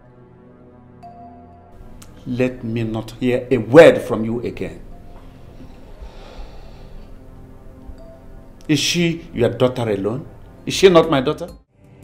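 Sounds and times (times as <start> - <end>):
faint background score: 0.0 - 12.0
soft breath: 5.0 - 7.3.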